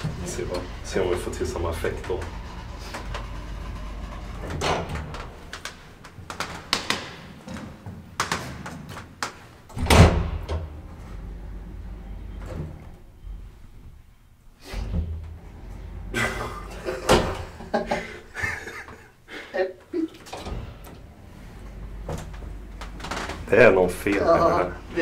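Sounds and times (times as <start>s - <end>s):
elevator door sliding: 0.0s - 7.8s, 9.6s - 19.0s, 20.2s - 25.0s
clicks and knocks: 2.2s - 9.4s.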